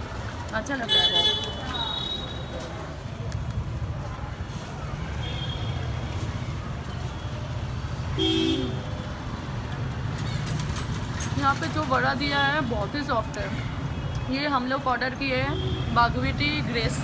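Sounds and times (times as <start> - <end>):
street traffic rumble: 0.0 - 17.0.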